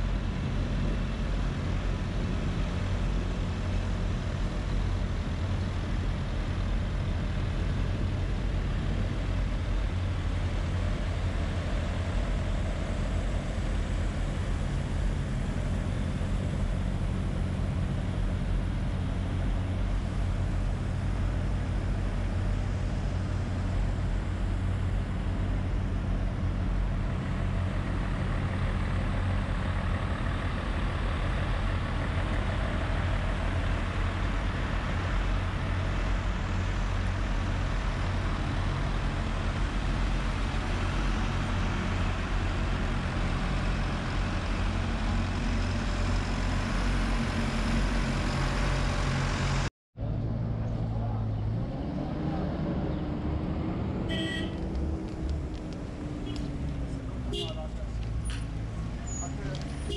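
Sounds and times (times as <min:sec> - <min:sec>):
diesel truck engine idling: 0:00.0 - 0:49.7, 0:54.0 - 0:59.9
engine with rising and falling pitch: 0:10.0 - 0:59.9.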